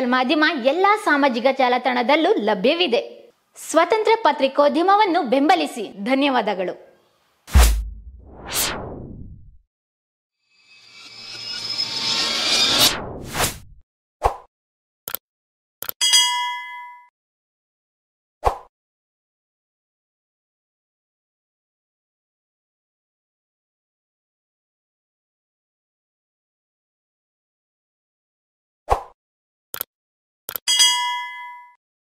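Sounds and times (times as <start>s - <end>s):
notification bell ding: 16.0s - 17.1s, 30.7s - 31.8s.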